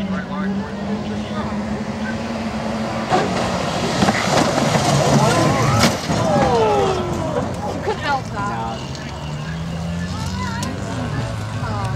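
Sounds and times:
people talking: 0.0s - 2.3s, 5.1s - 11.9s
racing car engines droning: 0.0s - 11.9s.

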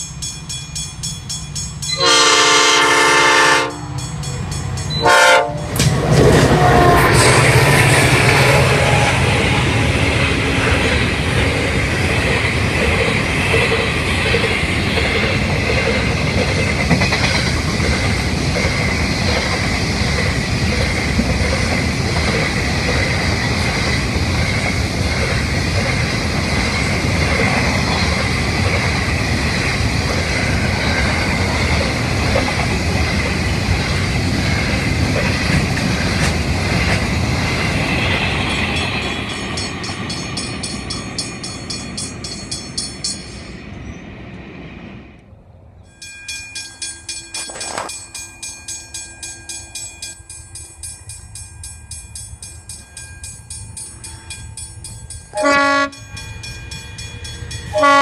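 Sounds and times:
level crossing warning bells: 0.0s - 5.8s, 36.2s - 43.8s, 45.8s - 58.0s
freight train rolling past: 0.0s - 58.0s.

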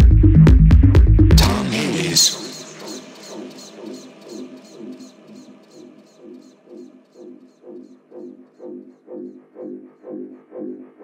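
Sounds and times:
repeating synth pulses: 1.4s - 8.7s.

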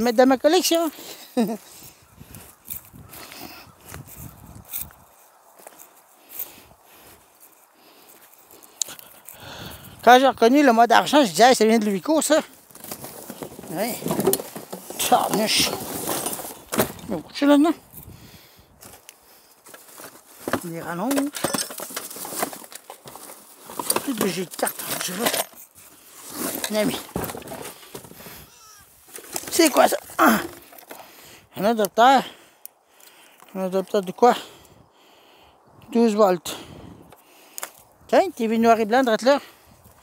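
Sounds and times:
junk rustling and crackling: 0.0s - 32.0s.

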